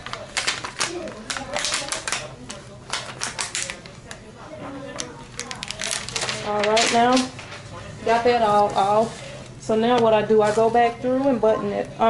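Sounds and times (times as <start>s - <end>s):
plastic sheet peeling crackle: 0.0s - 4.2s, 5.2s - 7.8s.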